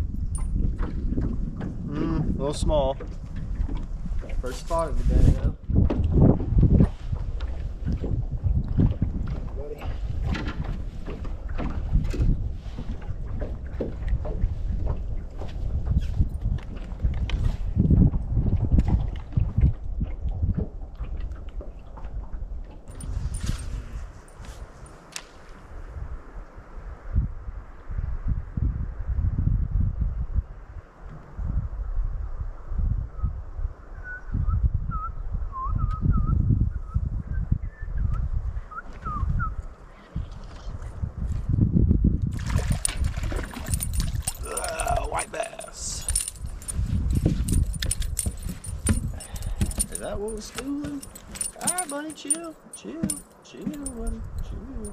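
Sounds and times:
wind on microphone: 0:00.0 - 0:54.9.

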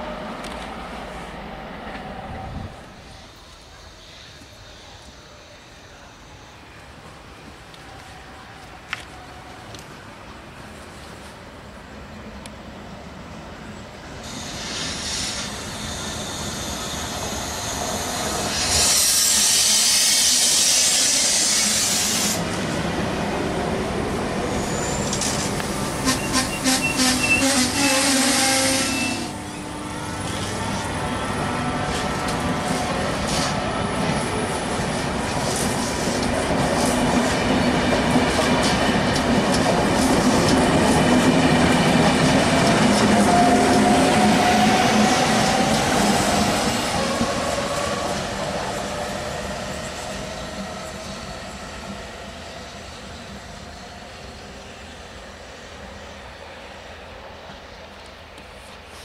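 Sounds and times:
train running past: 0:00.0 - 0:59.0
wheels squealing: 0:24.4 - 0:34.6.

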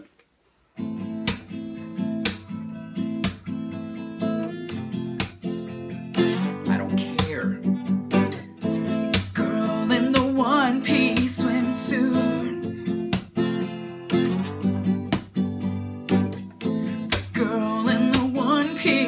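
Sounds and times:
acoustic guitar strumming: 0:00.8 - 0:19.0.

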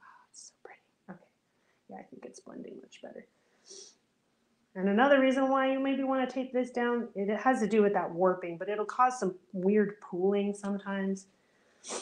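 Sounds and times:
woman whispering: 0:00.0 - 0:03.2
woman speaking: 0:04.8 - 0:11.3.

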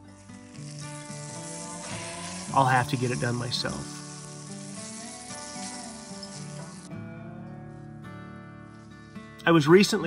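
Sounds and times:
food sizzling in a saucepan: 0:00.0 - 0:07.4.

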